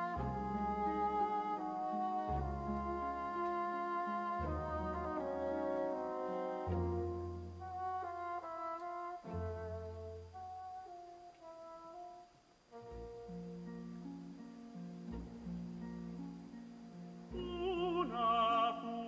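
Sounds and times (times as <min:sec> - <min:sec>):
horns and brass: 0:00.0 - 0:13.6
orchestra playing held chords: 0:00.0 - 0:13.7.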